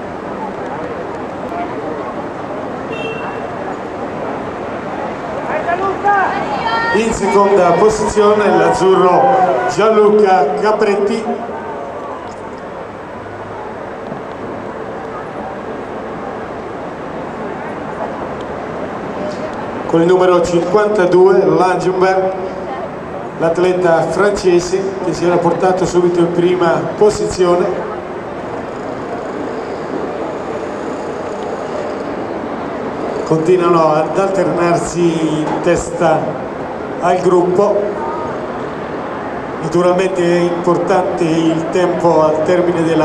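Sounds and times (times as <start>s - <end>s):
indistinct voices: 0.0s - 13.9s
rushing outdoor ambience: 0.0s - 43.0s.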